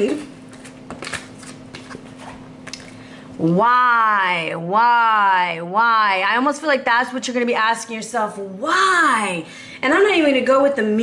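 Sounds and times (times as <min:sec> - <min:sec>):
faint steady hum: 0:00.0 - 0:11.0
cards clicking and rustling: 0:00.6 - 0:02.1.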